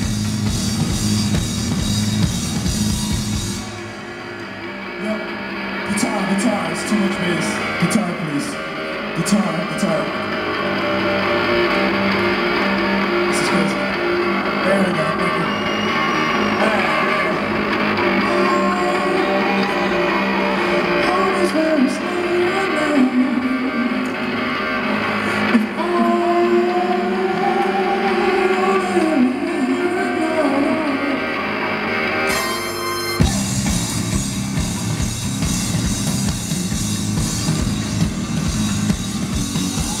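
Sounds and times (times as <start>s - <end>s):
heavy bass and drum beat: 0.0s - 4.0s, 32.3s - 40.0s
live band music over pa: 0.0s - 40.0s.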